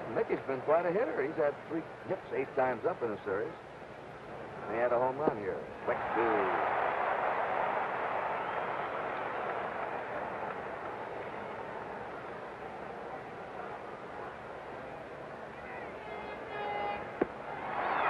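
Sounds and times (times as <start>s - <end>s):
crowd roar: 5.9s - 11.6s, 16.7s - 18.0s
high call from crowd: 15.6s - 18.0s.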